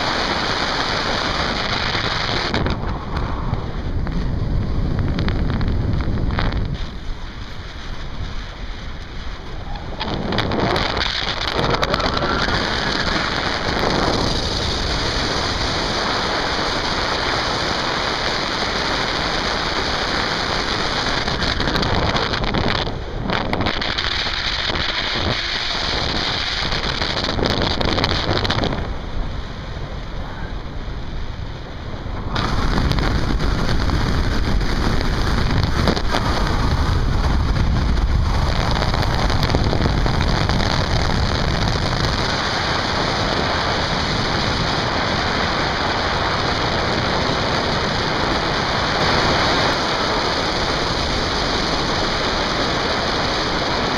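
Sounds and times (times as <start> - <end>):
wind rushing over microphone: 0.0 - 53.9.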